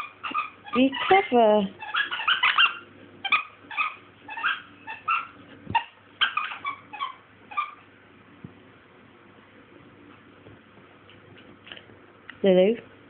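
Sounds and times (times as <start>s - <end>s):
puppy squeaking: 0.0s - 7.8s.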